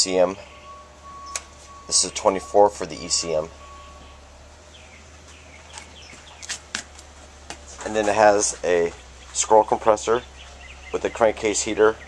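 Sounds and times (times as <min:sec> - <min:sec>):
steady low hum: 0:00.0 - 0:12.0
faint bird chirps: 0:00.4 - 0:06.5.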